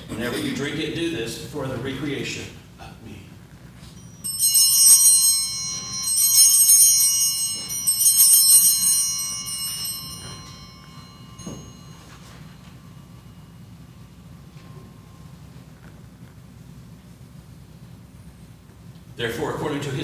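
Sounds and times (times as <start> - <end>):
small altar bells ringing: 3.7 - 18.4.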